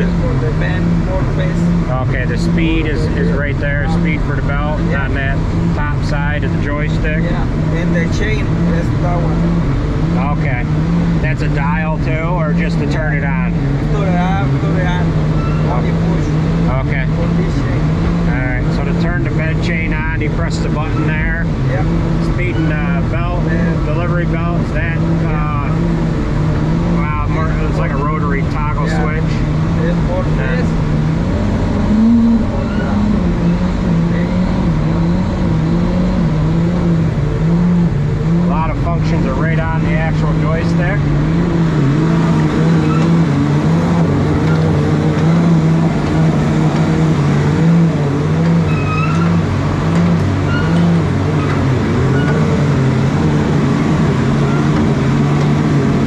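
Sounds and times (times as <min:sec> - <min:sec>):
tractor engine droning: 0:00.0 - 0:56.0.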